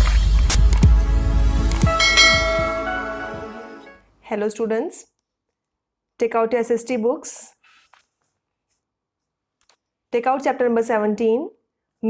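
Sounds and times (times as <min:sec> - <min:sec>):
bell-like chime: 0:01.8 - 0:04.0.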